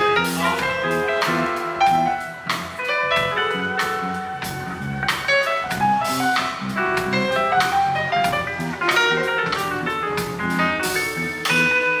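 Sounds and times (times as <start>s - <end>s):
drum beat: 0.0s - 11.7s
guitar: 0.0s - 12.0s.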